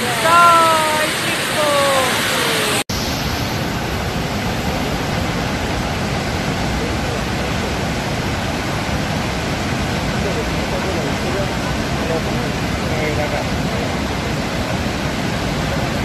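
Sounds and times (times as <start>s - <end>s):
faint voices: 0.0s - 2.8s
waterfall rushing: 0.0s - 16.0s.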